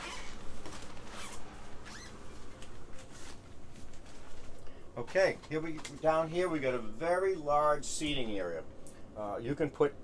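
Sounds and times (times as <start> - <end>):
clothing rustle: 0.0 - 6.2.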